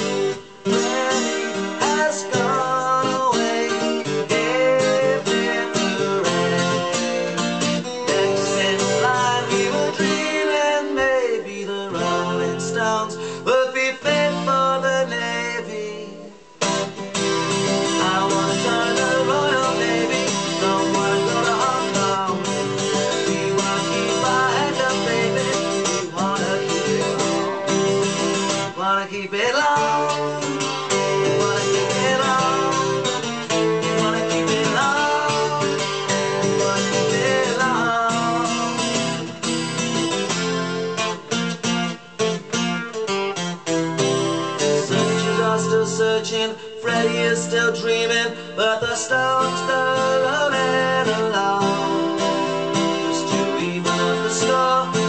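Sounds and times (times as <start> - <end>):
man singing: 0.0 - 43.0, 44.0 - 55.0
acoustic guitar strummed: 0.0 - 55.0.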